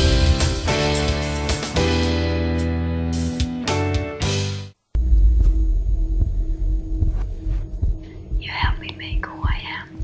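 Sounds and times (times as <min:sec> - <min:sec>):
soft low thuds: 0:04.9 - 0:09.8
deep throbbing rumble: 0:05.0 - 0:10.0
person whispering: 0:08.4 - 0:10.0.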